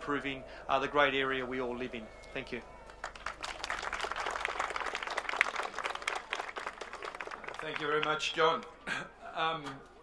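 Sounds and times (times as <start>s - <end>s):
crowd applauding: 2.8s - 8.7s.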